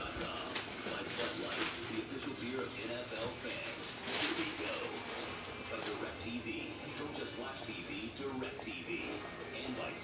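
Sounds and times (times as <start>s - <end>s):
television voice: 0.0s - 10.0s.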